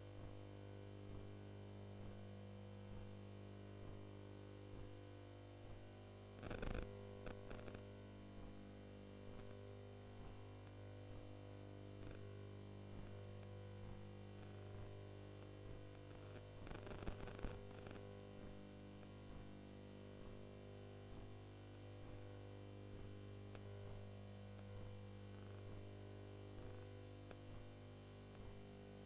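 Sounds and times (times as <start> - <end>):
electrical hum: 0.0 - 29.0.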